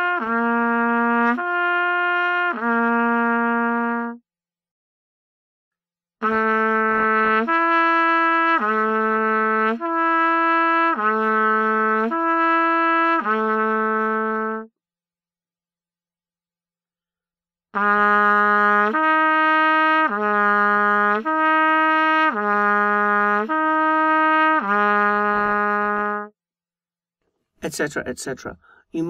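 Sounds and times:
trumpet playing slow lip slurs: 0:00.0 - 0:04.2, 0:06.2 - 0:14.7, 0:17.8 - 0:26.3.

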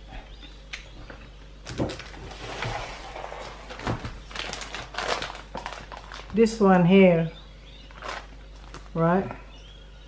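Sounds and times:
crunching of chewed spring roll: 0:04.2 - 0:06.4, 0:07.9 - 0:09.0.

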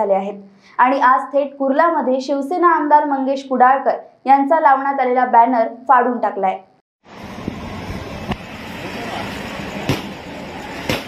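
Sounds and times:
street background noise: 0:07.0 - 0:11.0.

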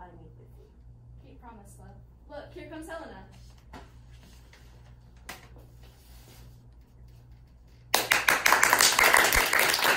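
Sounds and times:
audience applause: 0:08.0 - 0:09.9.

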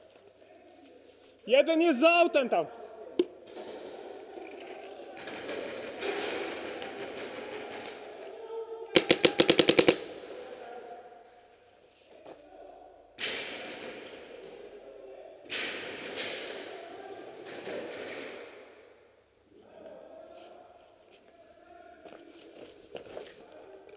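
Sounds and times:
paintball marker rapid burst: 0:09.0 - 0:10.2.

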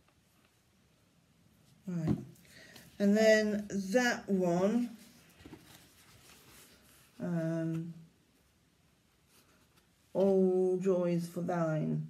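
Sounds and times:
faint handling noise: 0:04.5 - 0:10.7.

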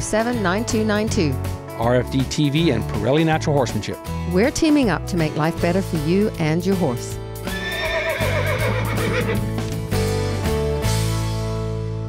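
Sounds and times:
horse whinnying: 0:07.4 - 0:09.5.

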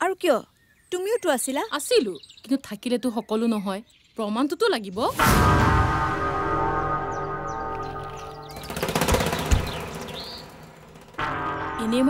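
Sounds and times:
sharp percussion hit: 0:05.1 - 0:12.0
sustained orchestral chord: 0:05.2 - 0:09.1, 0:09.8 - 0:12.0
high bird chirps: 0:06.8 - 0:11.2
fast drum roll: 0:08.3 - 0:12.0.

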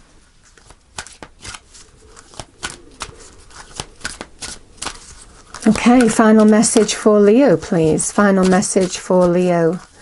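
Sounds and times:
cards being shuffled: 0:00.4 - 0:10.0.

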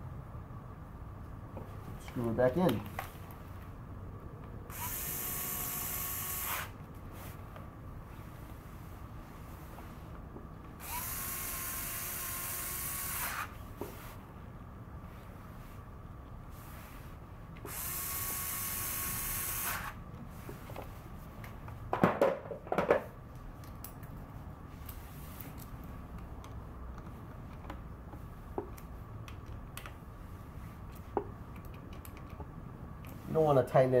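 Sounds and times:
power driver running: 0:04.7 - 0:06.8, 0:10.8 - 0:13.6.

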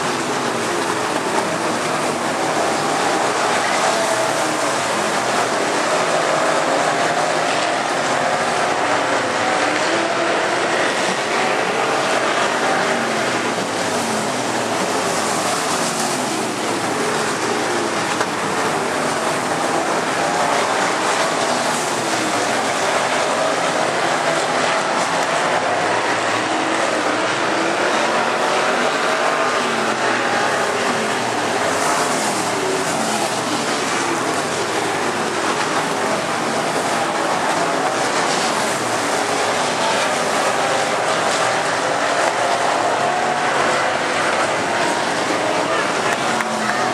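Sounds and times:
race car engines droning: 0:00.0 - 0:46.9.

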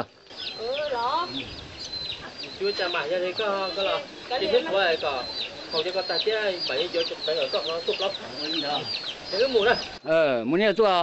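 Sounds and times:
chickens clucking: 0:00.0 - 0:10.1
chicken wavering call: 0:00.4 - 0:10.0.

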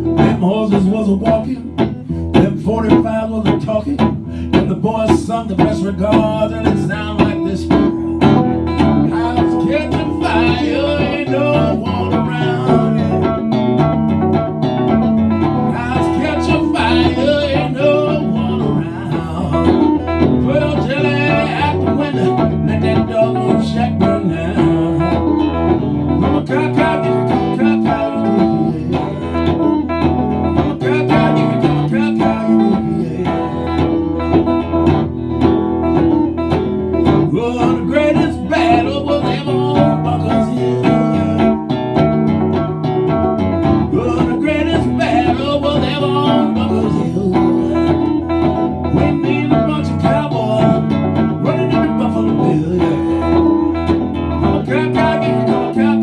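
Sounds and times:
solo country blues guitar: 0:00.0 - 0:56.0.

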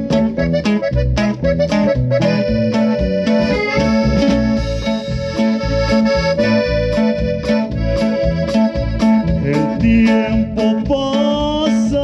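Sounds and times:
string accompaniment: 0:00.0 - 0:11.0
accordion melody: 0:00.0 - 0:12.0
bass: 0:00.0 - 0:12.0
drum kit: 0:00.0 - 0:12.0.

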